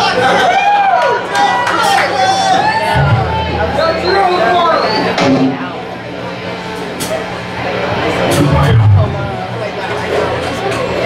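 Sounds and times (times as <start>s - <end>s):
bass guitar notes: 2.8s - 4.6s, 7.9s - 9.9s
electric guitar notes: 2.8s - 4.6s, 8.0s - 9.9s
amplifier hum: 2.8s - 4.7s, 7.9s - 10.2s.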